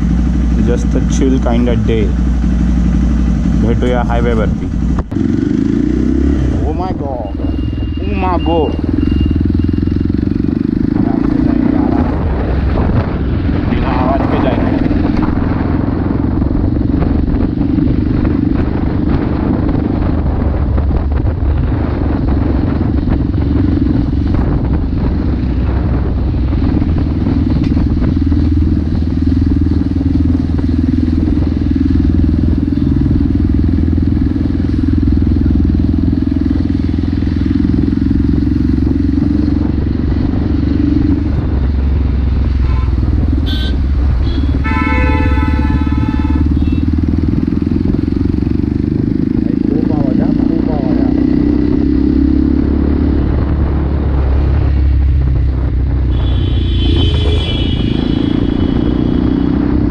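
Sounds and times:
motorcycle engine running: 0.0s - 59.9s
vehicle horn: 42.6s - 47.0s, 56.1s - 59.4s.

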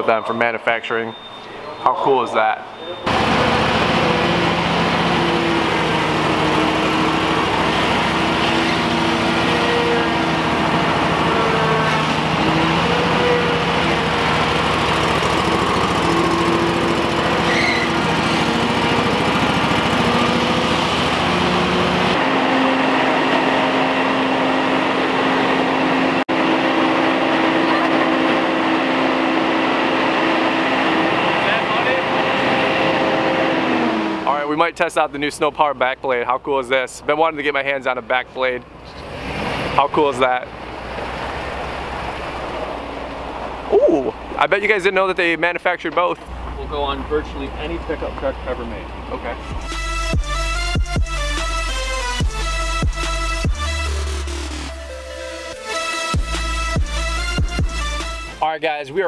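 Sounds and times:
leaf blower roaring: 3.1s - 34.3s.

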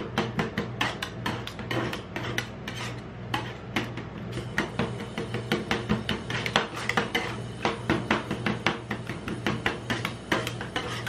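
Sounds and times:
metal spatulas chopping ice cream: 0.0s - 11.0s.

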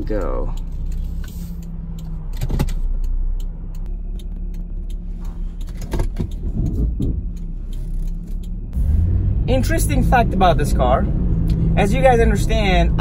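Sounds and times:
car engine running: 0.0s - 13.0s
road noise: 0.0s - 13.0s.

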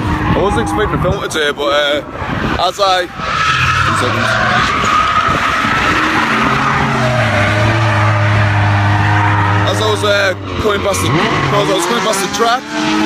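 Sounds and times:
tyres squealing and skidding: 0.0s - 13.0s
engine revving high: 3.2s - 13.0s.

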